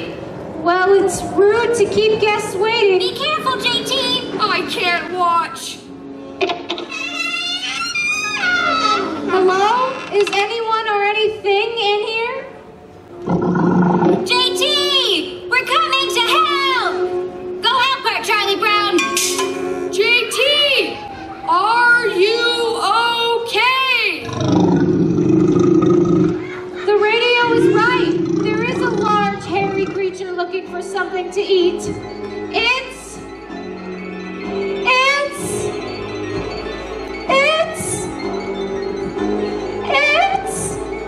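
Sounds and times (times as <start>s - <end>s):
low growling roar: 13.2s - 14.3s, 24.2s - 26.4s, 27.4s - 30.2s.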